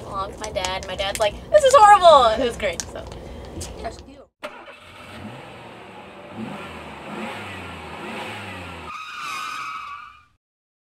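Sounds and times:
engine revving sound effect: 0:04.4 - 0:09.4
high wavering squeal: 0:08.9 - 0:10.4.

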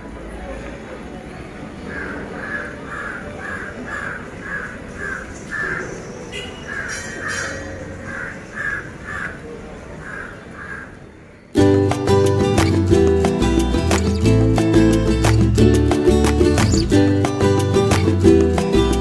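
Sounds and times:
outdoor background noise: 0:00.0 - 0:19.0
crow cawing: 0:01.9 - 0:06.0, 0:06.6 - 0:11.1
loud music: 0:11.6 - 0:19.0.

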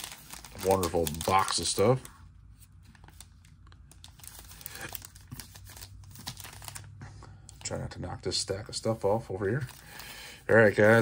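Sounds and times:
foil packs crinkling: 0:00.0 - 0:02.2, 0:03.0 - 0:07.0, 0:08.8 - 0:11.0.

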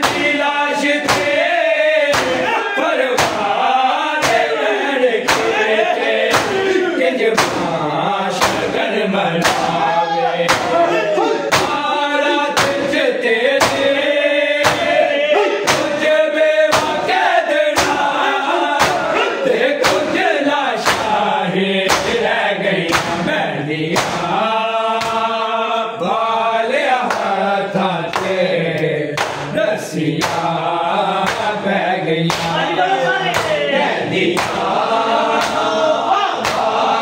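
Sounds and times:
men chanting in unison: 0:00.0 - 0:37.0
hands slapping bare chests: 0:01.0 - 0:01.5, 0:02.1 - 0:02.5, 0:03.2 - 0:03.6, 0:04.2 - 0:04.5, 0:05.2 - 0:05.6, 0:06.3 - 0:06.7, 0:07.4 - 0:07.8, 0:08.4 - 0:08.8, 0:09.4 - 0:09.8, 0:10.5 - 0:10.8, 0:11.5 - 0:11.9, 0:12.6 - 0:13.0, 0:13.6 - 0:13.9, 0:14.6 - 0:15.0, 0:15.7 - 0:16.0, 0:16.7 - 0:17.0, 0:17.7 - 0:18.2, 0:18.8 - 0:19.1, 0:19.8 - 0:20.2, 0:20.8 - 0:21.2, 0:21.9 - 0:22.2, 0:22.9 - 0:23.2, 0:23.9 - 0:24.3, 0:25.0 - 0:25.3, 0:28.1 - 0:29.6, 0:30.2 - 0:30.5, 0:31.2 - 0:31.5, 0:32.3 - 0:32.6, 0:33.3 - 0:33.6, 0:34.3 - 0:34.7, 0:35.4 - 0:35.7, 0:36.4 - 0:36.8.

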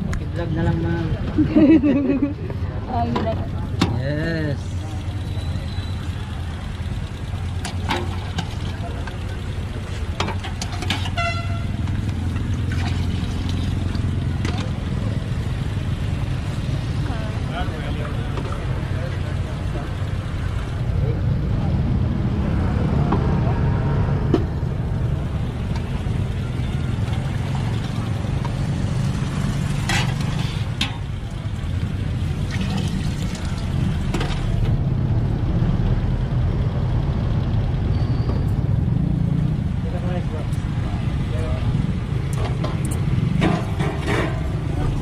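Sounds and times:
low traffic rumble: 0:00.0 - 0:45.0
vehicle horn toot: 0:11.0 - 0:11.8.

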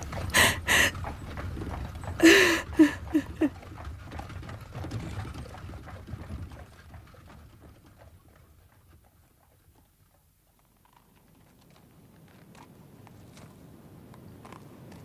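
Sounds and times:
woman weeping: 0:00.4 - 0:01.0, 0:02.2 - 0:03.6.

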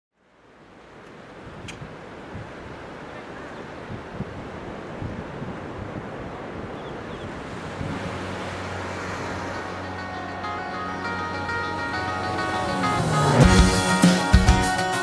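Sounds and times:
ocean waves breaking: 0:00.7 - 0:15.0
low held musical notes: 0:08.0 - 0:15.0.

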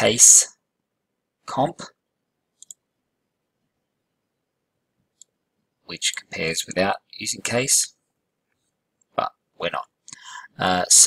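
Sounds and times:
computer mouse clicks: 0:02.6 - 0:02.8, 0:05.1 - 0:05.4.

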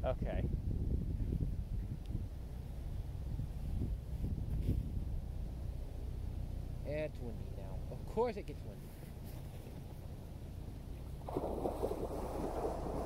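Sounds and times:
wind buffeting microphone: 0:00.0 - 0:06.7, 0:09.6 - 0:13.0.

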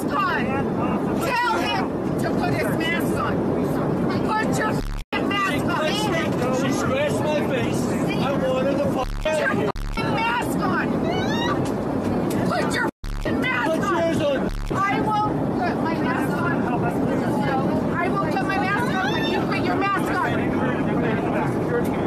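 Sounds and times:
people shouting and arguing: 0:04.2 - 0:21.2.

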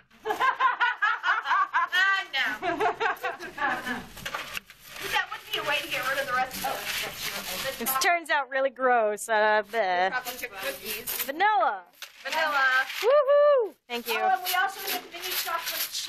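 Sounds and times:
people laughing: 0:00.0 - 0:04.1.

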